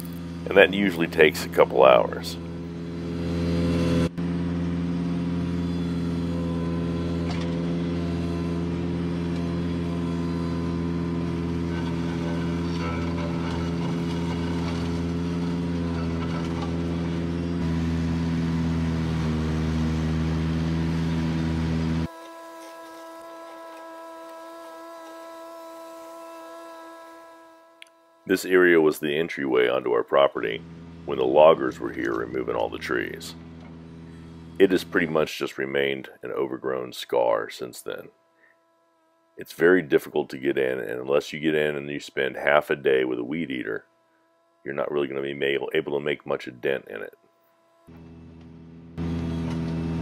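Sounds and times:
tractor engine running: 0:00.0 - 0:22.1, 0:28.2 - 0:38.0, 0:47.9 - 0:50.0
mower cutting brush: 0:00.0 - 0:50.0.

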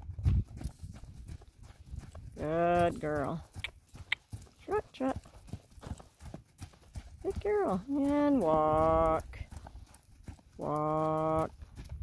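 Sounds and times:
horse hoofbeats on sand: 0:00.0 - 0:12.0.

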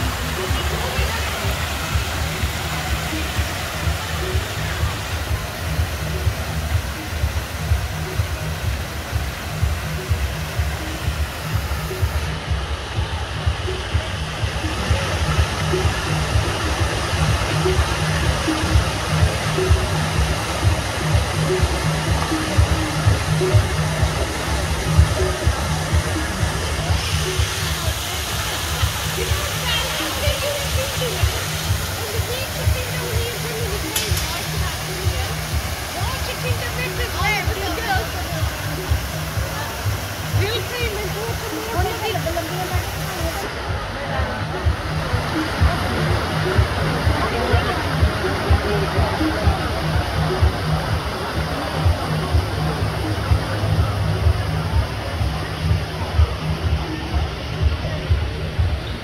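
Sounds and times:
fountain water splashing: 0:00.0 - 0:59.0
music playing: 0:00.0 - 0:59.0
people's voices: 0:00.0 - 0:59.0.

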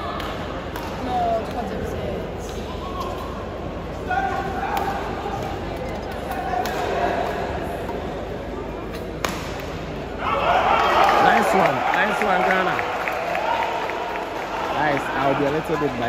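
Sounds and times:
spectators' voices and shouts: 0:09.9 - 0:16.0
crowd cheering: 0:10.2 - 0:16.0.

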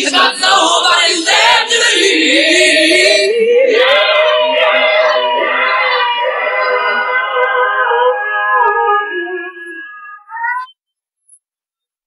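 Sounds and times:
a cappella singing voices: 0:00.0 - 0:09.8.

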